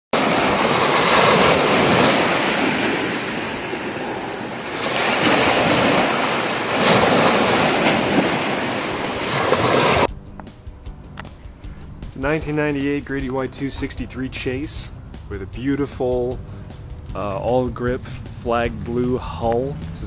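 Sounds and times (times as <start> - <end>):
ocean surf on sandy beach: 0.1 - 10.1
quick high chirps: 1.6 - 9.6.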